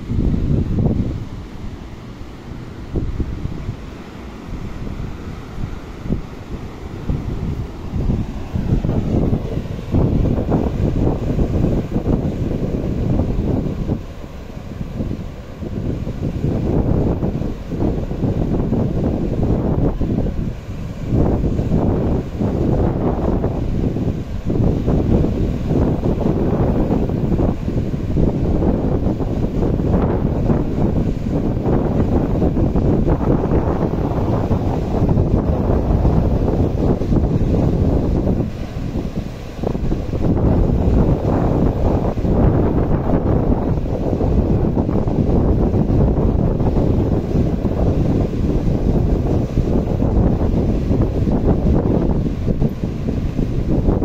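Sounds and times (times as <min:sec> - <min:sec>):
surf breaking on beach: 0:00.0 - 0:54.0
wind buffeting microphone: 0:00.0 - 0:54.0.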